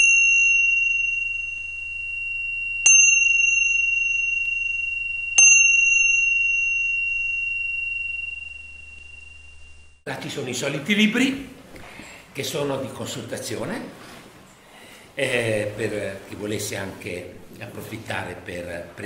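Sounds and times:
small metal bell ringing: 0.0 - 10.0.

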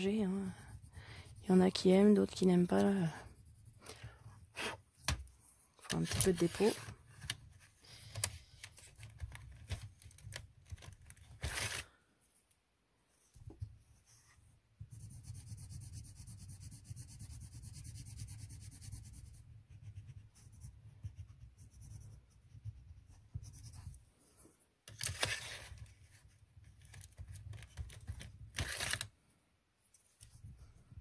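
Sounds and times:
coloured pencil scratching on paper: 0.0 - 4.9, 13.8 - 24.0.

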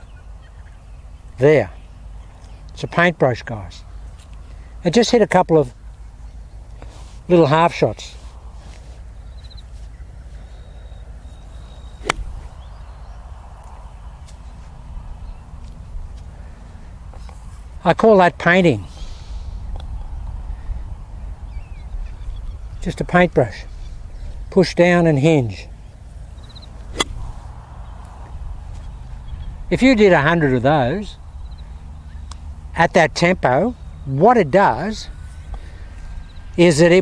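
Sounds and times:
golf club striking ball: 11.9 - 12.8, 26.9 - 27.3.

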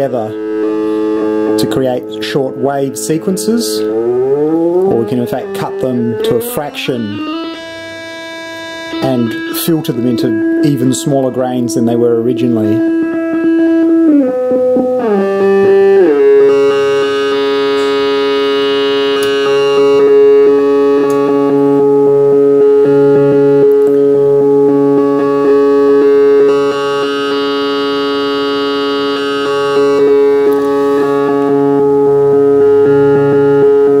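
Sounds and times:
lower synthesizer note: 0.0 - 34.0
sustained synthesizer note: 0.0 - 34.0.

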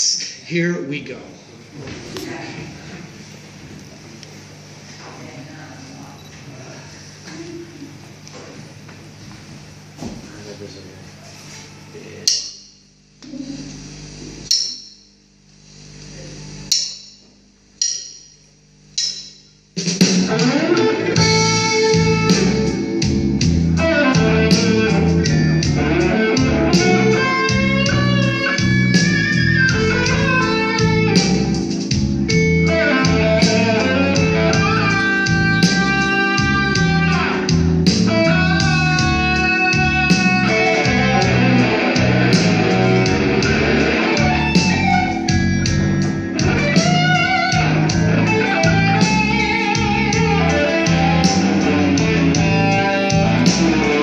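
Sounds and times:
bass guitar: 20.0 - 54.0
lead electric guitar: 20.3 - 54.0.

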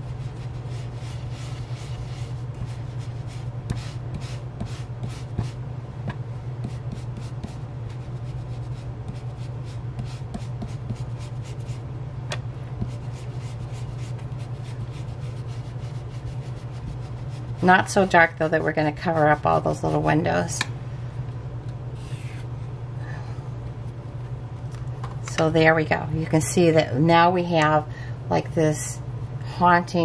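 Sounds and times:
brush rubbing over paper: 0.0 - 5.6, 6.6 - 11.8, 12.8 - 17.8
steady low hum: 0.0 - 30.0.

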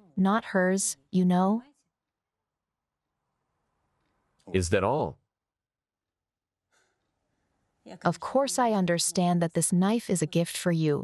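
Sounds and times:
spoken word: 4.5 - 5.1.

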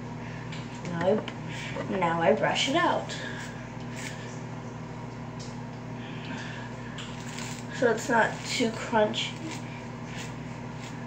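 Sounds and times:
low electrical hum: 0.0 - 11.0
hairbrush scratching through hair: 9.2 - 11.0.

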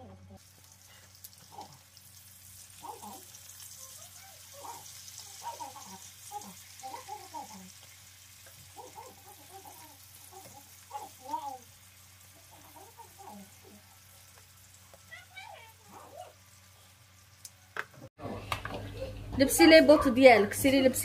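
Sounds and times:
potatoes sizzling in hot oil: 0.4 - 18.1.

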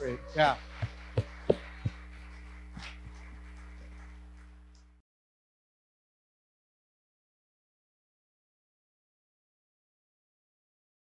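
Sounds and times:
electrical mains hum: 0.0 - 5.0
hand claps: 0.0 - 5.0.

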